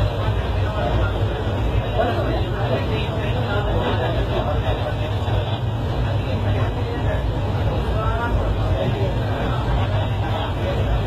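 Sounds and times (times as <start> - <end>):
passengers talking: 0.0 - 11.0
train rumbling inside coach: 0.0 - 11.0.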